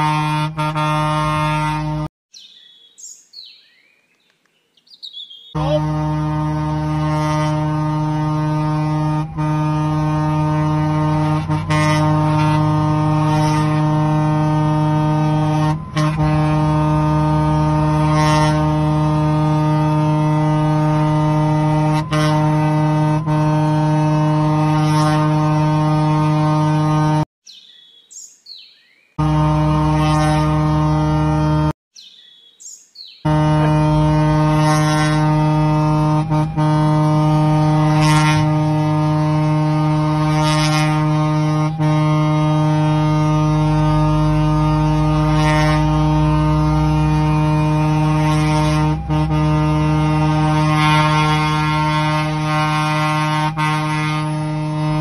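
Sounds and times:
fire engine air horn blast: 0.0s - 2.1s, 5.6s - 27.3s, 29.2s - 31.8s, 33.2s - 55.0s.

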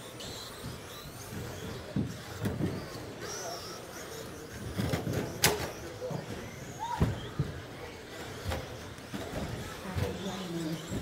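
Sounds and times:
busy room noise: 0.0s - 11.0s
radio-controlled truck motors whirring: 0.0s - 11.0s.

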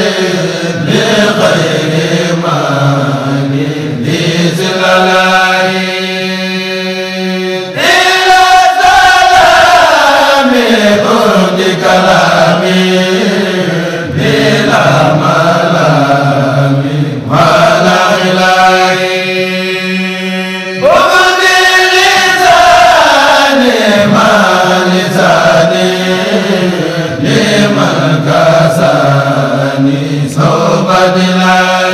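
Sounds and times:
vocal chanting: 0.0s - 31.9s.

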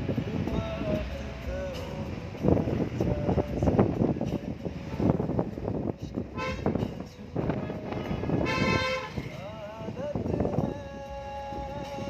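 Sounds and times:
low rumbling background: 0.0s - 12.0s
wavering sung melody: 0.0s - 12.0s
vehicle horn toots: 6.4s - 6.9s, 8.3s - 9.4s.

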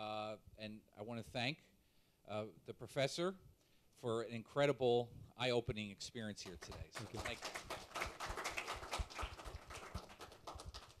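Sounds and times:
audience clapping: 6.4s - 11.0s.

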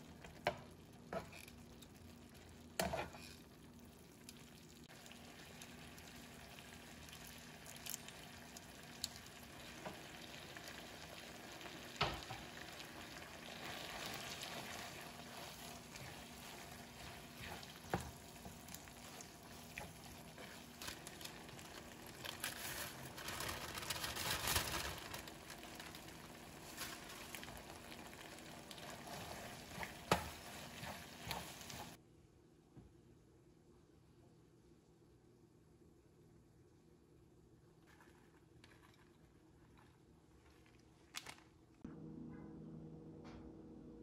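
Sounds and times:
sauce sizzling in a frying pan: 0.0s - 32.0s
utensils stirring pasta: 0.0s - 32.0s.

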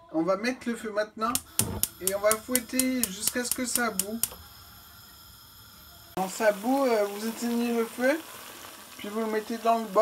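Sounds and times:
faint steady hiss: 1.3s - 10.0s
metal whisk tapping saucepan: 1.4s - 4.3s.

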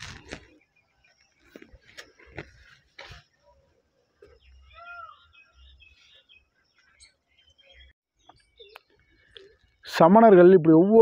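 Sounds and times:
faint bird chirps: 0.1s - 9.9s.

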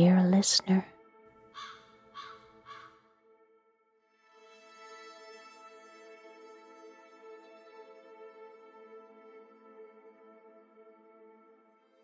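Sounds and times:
soft ambient music: 0.0s - 12.0s
short caw-like calls: 1.6s - 3.0s.

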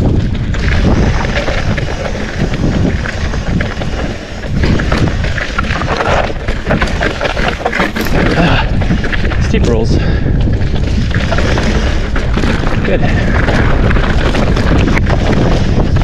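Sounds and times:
bike knocking and rattling: 0.0s - 16.0s
bike tyres crunching on stone: 0.0s - 16.0s
wind rushing across microphone: 0.0s - 16.0s.

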